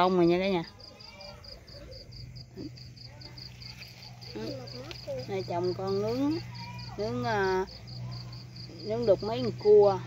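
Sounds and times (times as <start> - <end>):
cricket chirping: 0.0 - 10.0
steady low hum: 0.1 - 10.0.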